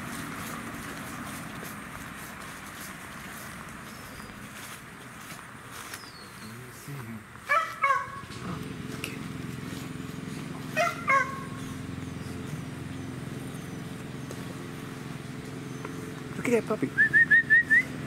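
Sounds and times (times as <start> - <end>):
low engine hum: 0.0 - 18.0
dog barking: 7.5 - 8.3, 10.7 - 11.6.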